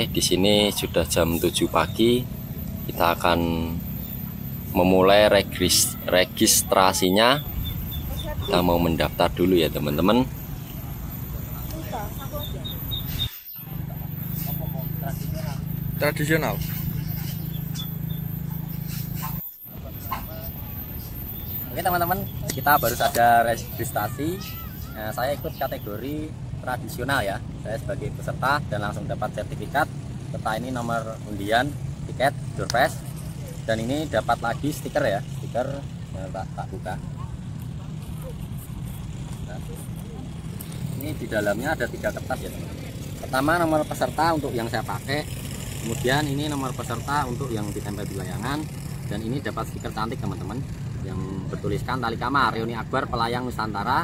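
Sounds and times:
low outdoor rumble: 0:00.0 - 0:54.0
short high chirps: 0:12.2 - 0:14.7.

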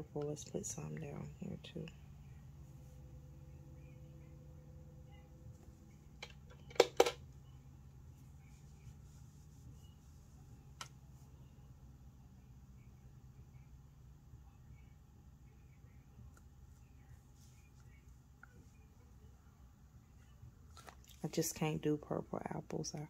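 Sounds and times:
small machine humming: 0:00.8 - 0:20.6.

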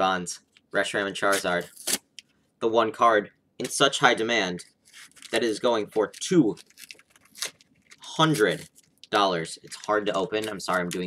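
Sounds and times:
foil wrapper tearing: 0:04.9 - 0:09.0, 0:09.6 - 0:11.0.

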